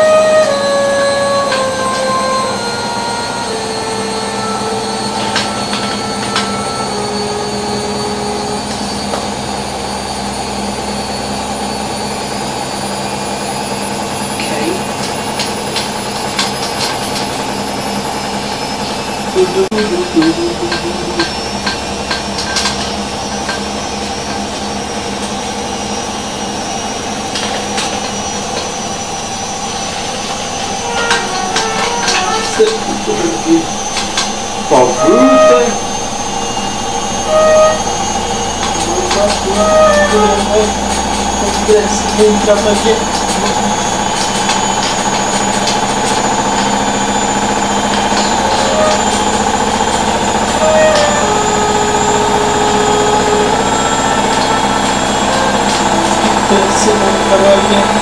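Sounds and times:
washing machine spinning: 0:00.0 - 0:58.0.

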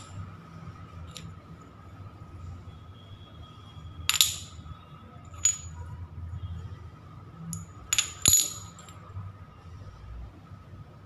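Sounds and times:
ceramic tiles clinking: 0:01.1 - 0:01.3, 0:04.1 - 0:04.7, 0:05.3 - 0:05.9, 0:07.5 - 0:09.0.

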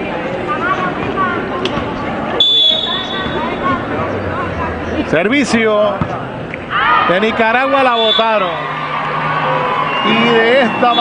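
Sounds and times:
arena crowd chatter: 0:00.0 - 0:11.0
referee's whistle: 0:02.4 - 0:03.4, 0:07.8 - 0:08.5, 0:09.9 - 0:11.0.

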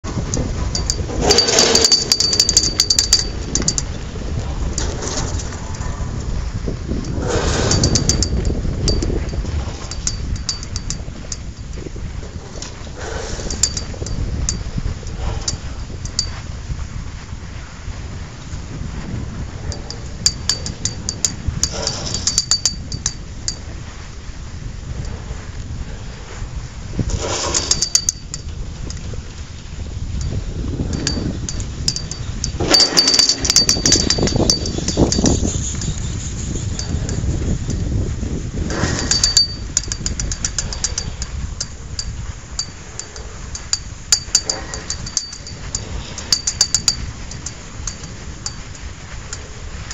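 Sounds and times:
wind buffeting microphone: 0:00.0 - 0:49.9
small metallic clicks and clinks: 0:00.3 - 0:04.0, 0:07.0 - 0:11.8, 0:13.4 - 0:14.7, 0:15.4 - 0:16.4, 0:19.7 - 0:23.7, 0:27.2 - 0:29.1, 0:30.2 - 0:37.8, 0:38.7 - 0:49.9.

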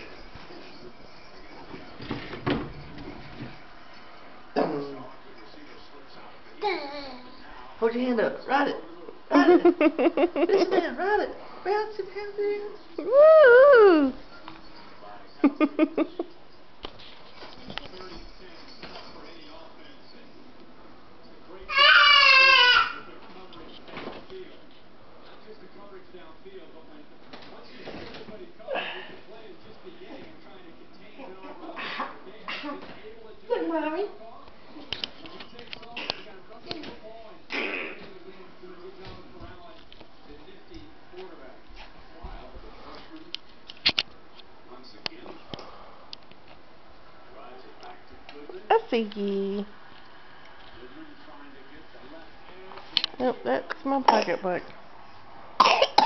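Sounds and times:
toddler babbling: 0:06.6 - 0:07.3
toddler shouting: 0:21.7 - 0:23.0.

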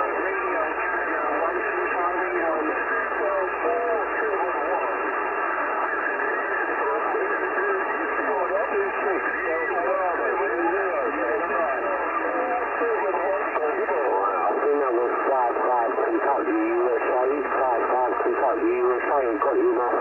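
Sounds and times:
radio voices babbling: 0:00.0 - 0:20.0.

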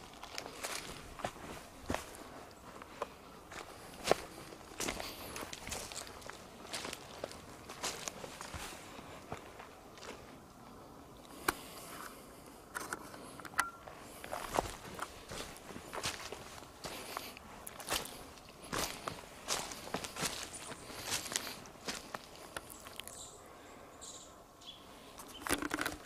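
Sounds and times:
footsteps crunching on leaves: 0:00.0 - 0:10.2, 0:14.3 - 0:22.8.

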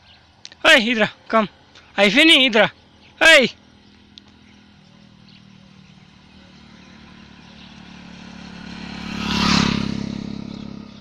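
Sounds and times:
motorcycle passing by: 0:02.4 - 0:11.0.

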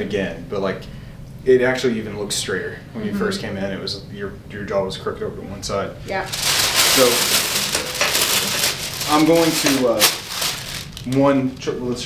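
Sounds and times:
paper being crumpled: 0:06.3 - 0:11.7.

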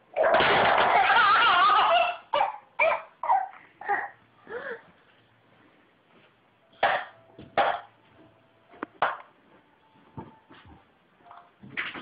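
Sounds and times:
toddler yelping: 0:00.9 - 0:04.2.

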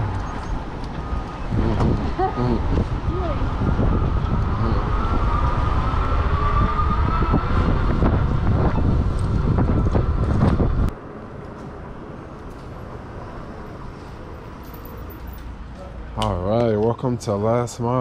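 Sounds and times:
wind rushing over microphone: 0:00.0 - 0:11.2
street background: 0:00.0 - 0:18.0.

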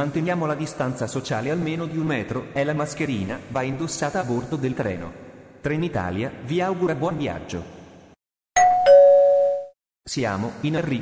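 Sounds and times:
two-note electronic chime: 0:08.6 - 0:09.7.

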